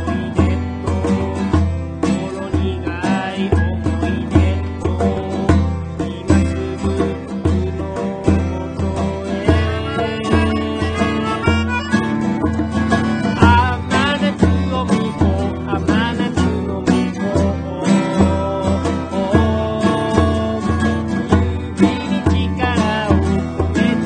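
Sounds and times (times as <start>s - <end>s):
acoustic guitar: 0.0s - 24.0s
man singing: 0.0s - 24.0s
steady bass beat: 9.4s - 15.4s.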